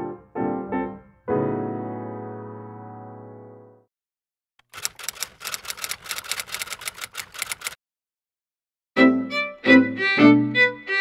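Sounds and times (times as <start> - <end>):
typewriter keystroke clicks: 4.6 - 7.8.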